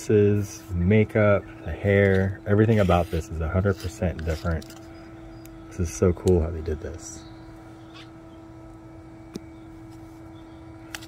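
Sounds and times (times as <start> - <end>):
low hum with held tone: 0.0 - 11.0.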